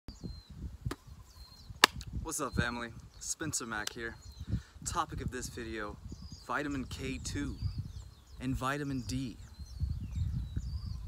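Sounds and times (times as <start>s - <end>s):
loud sharp snap: 1.8s - 2.1s.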